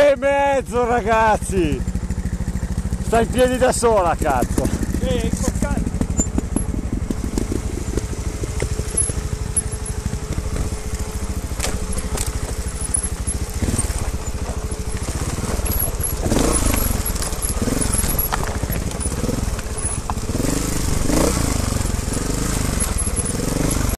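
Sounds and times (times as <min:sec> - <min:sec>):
motorcycle engine revving: 0:00.0 - 0:23.9
motorcycle rattling over rocks: 0:00.8 - 0:23.9.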